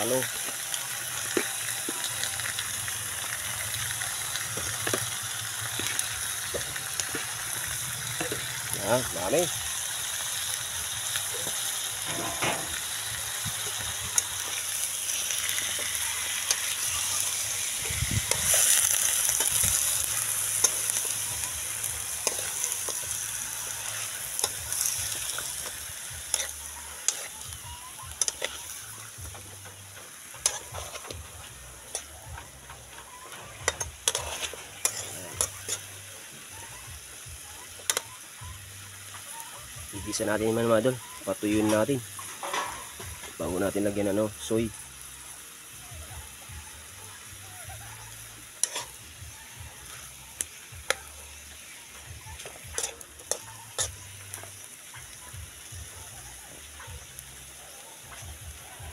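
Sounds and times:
chicken sizzling in a wok: 0.0s - 58.9s.

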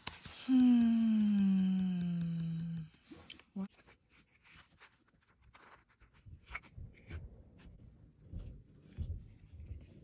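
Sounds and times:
paper sticker sheets rustling: 0.0s - 1.4s.

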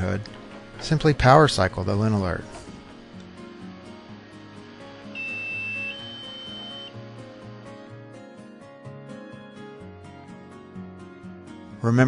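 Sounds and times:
background music: 0.0s - 12.0s
two-tone electronic beep: 5.2s - 7.0s.

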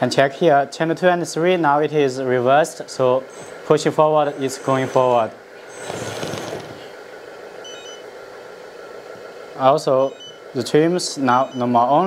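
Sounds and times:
electric motor whirring and rattling: 3.2s - 7.0s.

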